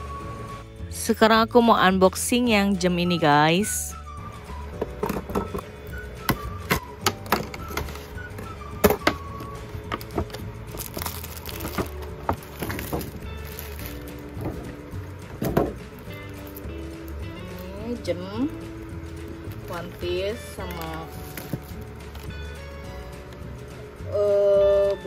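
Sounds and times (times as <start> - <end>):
background music: 0.0 - 25.0
plastic wrap crinkling: 7.2 - 23.4.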